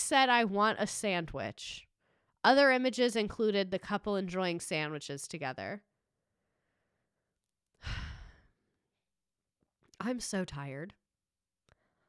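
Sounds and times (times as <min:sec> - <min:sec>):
woman speaking: 0:00.0 - 0:01.8, 0:02.4 - 0:05.8, 0:10.0 - 0:11.0
woman sighing: 0:07.8 - 0:08.5.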